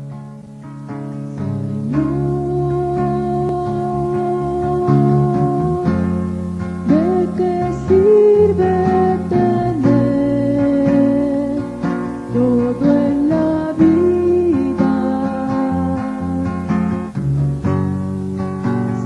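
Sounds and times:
acoustic guitar: 0:00.0 - 0:19.0
person singing: 0:01.4 - 0:06.2, 0:06.8 - 0:17.1.

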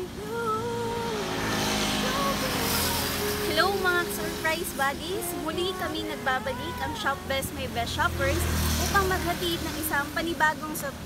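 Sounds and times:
background music with melody: 0:00.0 - 0:11.0
road vehicle passing: 0:00.0 - 0:11.0.

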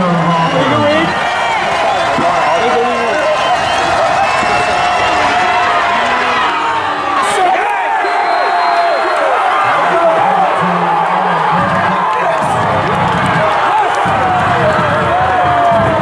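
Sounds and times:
stadium crowd cheering and yelling: 0:00.0 - 0:16.0.

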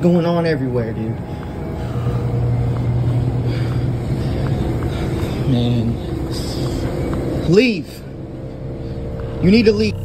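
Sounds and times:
faint noisy background: 0:00.0 - 0:10.0
steady low hum: 0:00.0 - 0:10.0.

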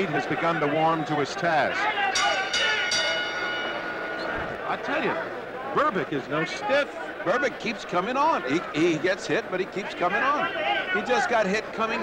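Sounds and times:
boxing ring bell ringing: 0:02.1 - 0:05.2.

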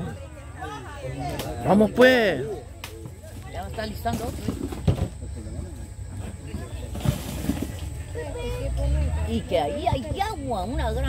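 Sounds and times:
men talking: 0:01.4 - 0:02.7.

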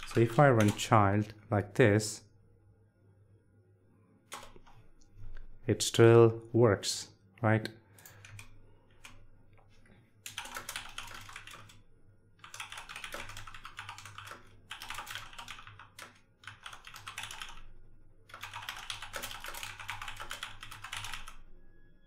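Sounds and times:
typing on computer keyboard: 0:00.0 - 0:00.9, 0:04.3 - 0:04.8, 0:08.0 - 0:09.2, 0:10.2 - 0:11.8, 0:12.4 - 0:17.7, 0:18.3 - 0:21.4.

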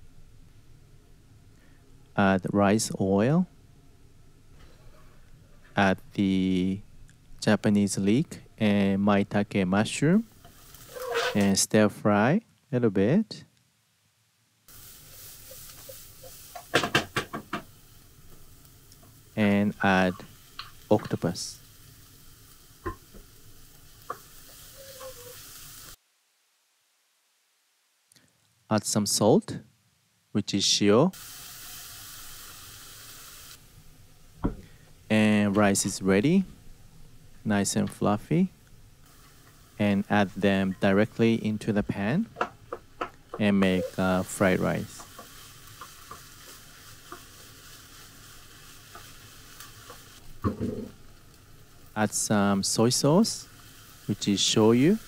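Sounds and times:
food sizzling in a frying pan: 0:09.2 - 0:11.5, 0:14.7 - 0:26.0, 0:31.1 - 0:55.0
wooden spatula scraping pan: 0:10.9 - 0:11.4, 0:24.8 - 0:25.4, 0:43.4 - 0:44.2
thump: 0:34.4 - 0:34.6.

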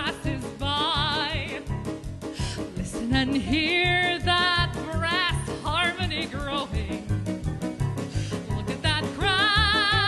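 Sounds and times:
woman singing: 0:00.0 - 0:01.7, 0:02.6 - 0:07.0, 0:08.5 - 0:10.0.

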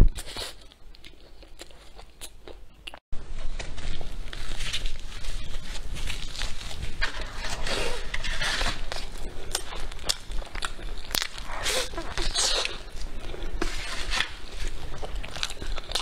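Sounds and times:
crunchy chewing: 0:00.2 - 0:16.0
flatbread tearing: 0:03.4 - 0:10.3.

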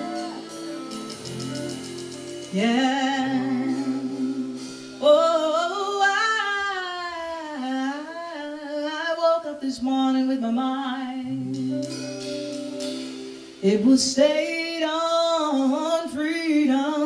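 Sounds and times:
acoustic guitar: 0:00.0 - 0:08.8, 0:09.6 - 0:17.0
woman singing wordless melody: 0:02.4 - 0:12.1, 0:13.6 - 0:17.0.

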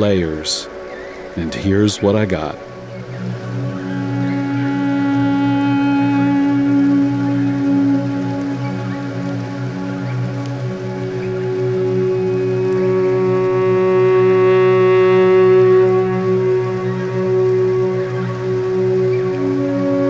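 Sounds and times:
ambient electric guitar notes: 0:00.0 - 0:20.0
low pulsing drone: 0:00.0 - 0:20.0.

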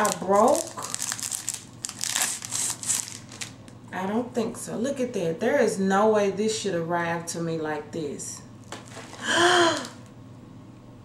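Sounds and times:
plastic wrapping crinkling: 0:00.0 - 0:03.7, 0:08.6 - 0:10.0.

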